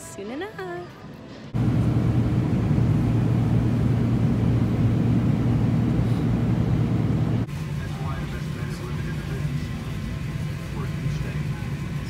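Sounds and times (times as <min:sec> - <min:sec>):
rushing air: 0:01.6 - 0:07.5
airliner engines drone: 0:01.6 - 0:12.0.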